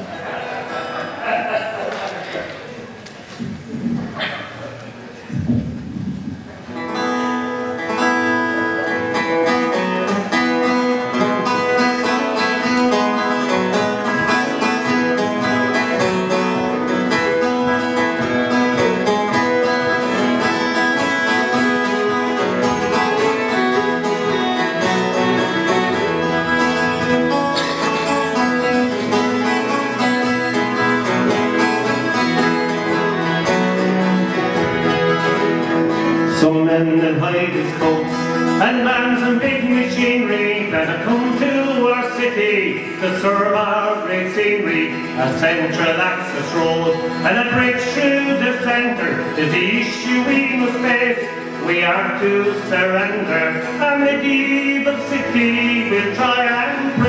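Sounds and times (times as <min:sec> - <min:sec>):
acoustic guitar: 0:00.0 - 0:57.0
plucked string instruments: 0:00.0 - 0:57.0.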